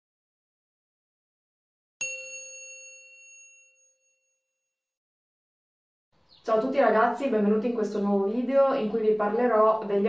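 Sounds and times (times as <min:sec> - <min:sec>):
chime ding: 0:02.0 - 0:04.6.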